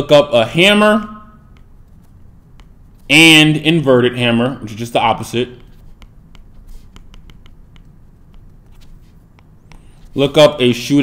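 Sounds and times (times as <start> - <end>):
low room hum: 0.0 - 11.0
stylus tapping on drawing tablet: 1.4 - 3.1, 5.2 - 10.2.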